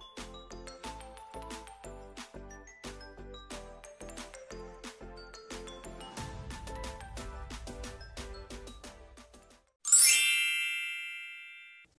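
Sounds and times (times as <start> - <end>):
bright chime ringing: 9.9 - 12.0.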